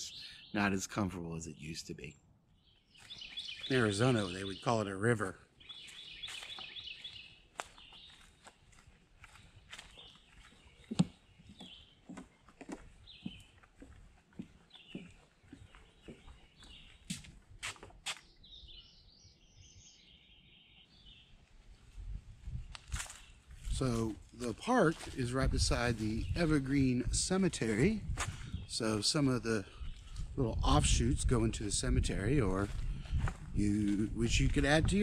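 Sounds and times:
birds chirping: 0.0s - 35.0s
high bird trill: 2.6s - 8.3s
footsteps on a woodland trail: 2.9s - 4.8s, 5.6s - 18.6s, 21.1s - 28.7s, 29.7s - 30.4s, 32.5s - 35.0s.

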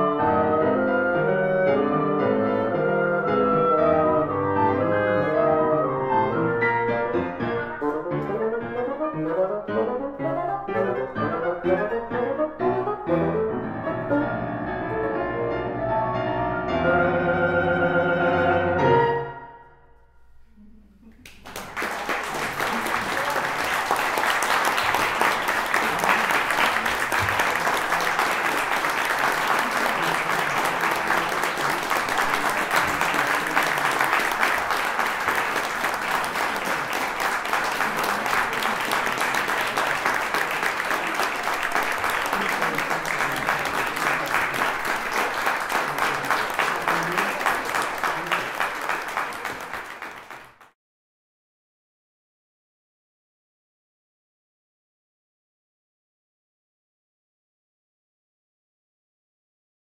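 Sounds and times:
audience applauding: 21.2s - 50.8s.

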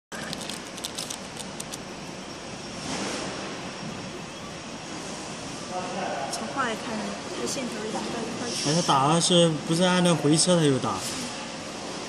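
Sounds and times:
cooling fans whirring: 0.1s - 12.0s.

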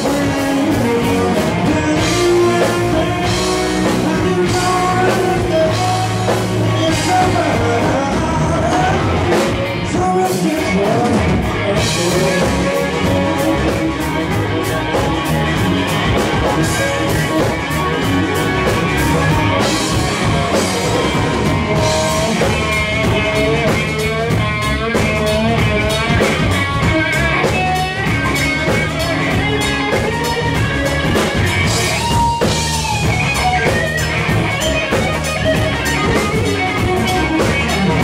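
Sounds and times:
electric guitar solo with bent notes: 0.0s - 38.0s
live rock band playing: 0.0s - 38.0s.

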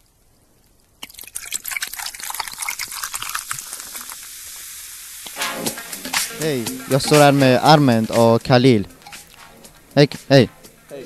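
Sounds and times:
fizzy drink pouring: 1.0s - 8.0s
music: 5.4s - 11.0s.

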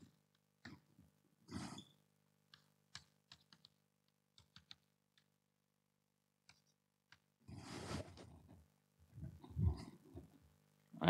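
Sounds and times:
chalk scratching on blackboard: 7.5s - 8.3s.

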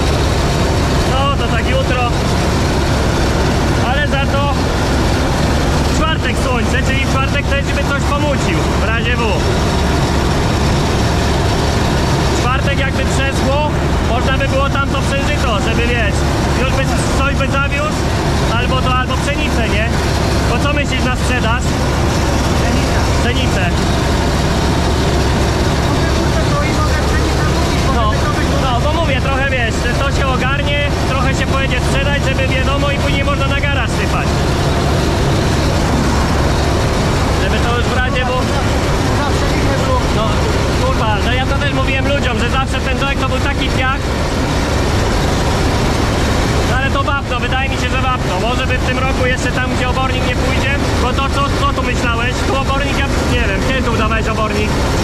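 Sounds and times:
combine harvester rumbling: 0.0s - 55.0s
men talking: 0.0s - 55.0s.

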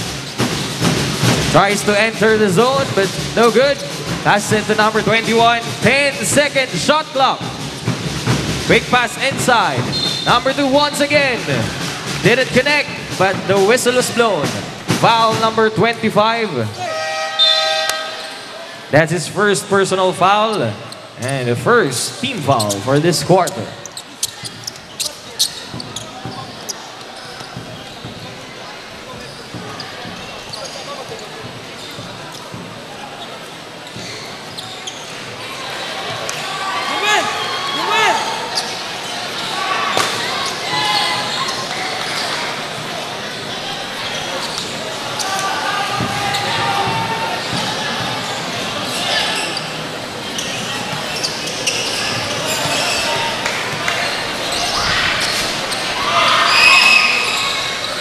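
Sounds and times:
crowd chattering and shouting: 0.0s - 58.0s
basketball bouncing on court: 24.2s - 26.7s, 27.4s - 28.4s.

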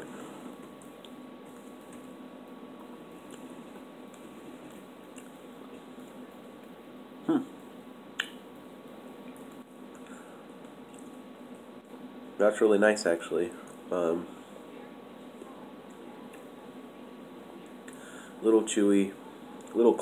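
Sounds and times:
person chewing: 3.2s - 5.8s
person humming hmm: 7.2s - 7.5s
wet mouth clicks: 8.2s - 8.4s.

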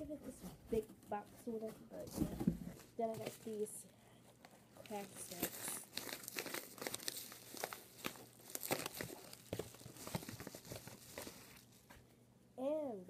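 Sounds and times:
paper envelope crinkling: 4.8s - 11.9s.

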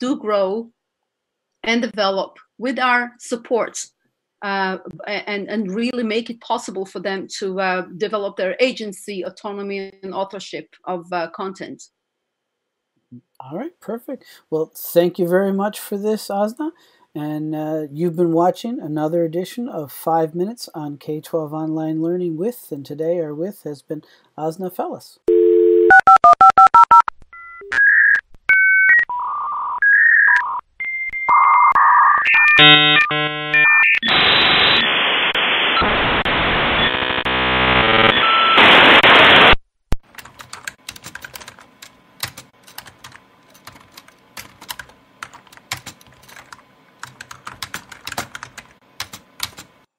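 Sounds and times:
touch-tone dialing: 25.3s - 27.9s
dial tone: 25.3s - 29.0s, 30.3s - 34.1s, 36.8s - 38.6s
harsh hissing static: 33.1s - 39.6s
typing on keys: 40.0s - 49.7s.

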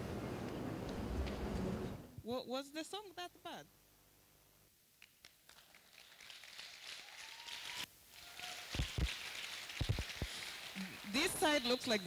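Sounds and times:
audience clapping: 5.0s - 12.0s.

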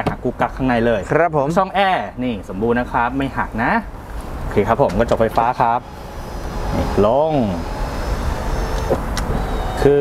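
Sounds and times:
power window motor running: 5.0s - 10.0s.

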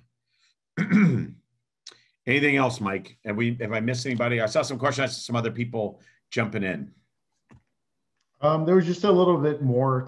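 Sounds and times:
man clearing his throat: 0.8s - 1.5s.

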